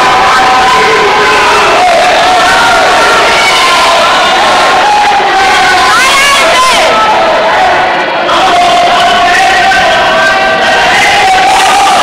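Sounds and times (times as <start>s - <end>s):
long drawn-out yells: 0.0s - 12.0s
spectators shouting and cheering: 0.0s - 12.0s.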